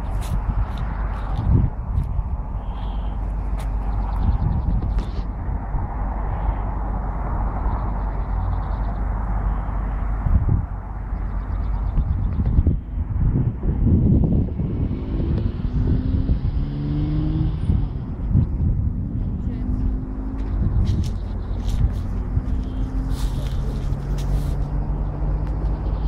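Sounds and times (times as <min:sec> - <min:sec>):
traffic passing: 0:00.0 - 0:26.0.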